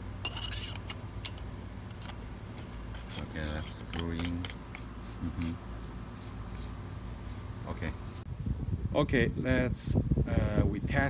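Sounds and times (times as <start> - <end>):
steady low rumble: 4.6 - 11.0.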